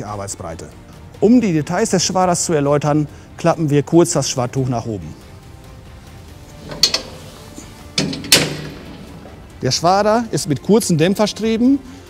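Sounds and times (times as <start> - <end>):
loud metal clunk: 6.6 - 9.4.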